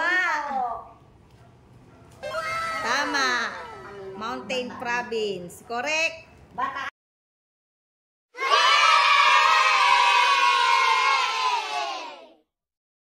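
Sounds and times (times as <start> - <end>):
children cheering: 2.2 - 4.1, 8.4 - 12.4.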